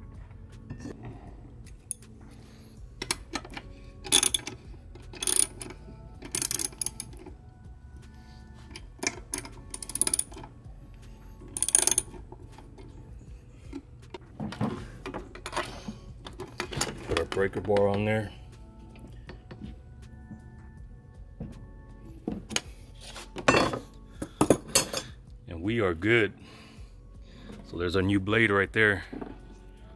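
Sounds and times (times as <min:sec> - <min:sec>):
quiet background music: 0:00.0 - 0:29.9
metallic clinking and rattling: 0:01.7 - 0:02.1, 0:03.0 - 0:07.4, 0:08.6 - 0:10.6, 0:11.4 - 0:18.0, 0:23.4 - 0:25.2.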